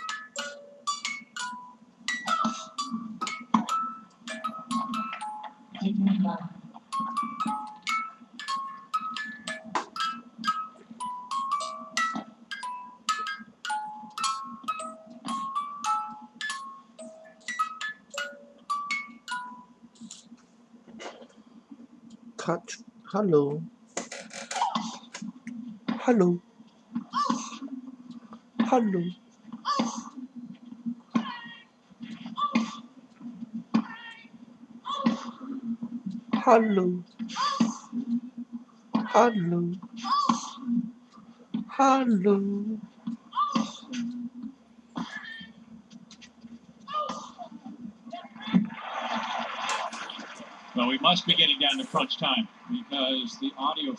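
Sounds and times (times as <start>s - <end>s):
music box tinkling melody: 0.0s - 5.7s, 6.9s - 19.8s.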